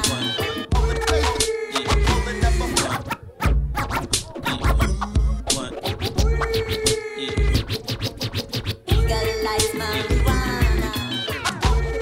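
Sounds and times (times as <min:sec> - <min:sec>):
hip hop beat: 0:00.0 - 0:12.0
vinyl record scratching: 0:00.0 - 0:12.0.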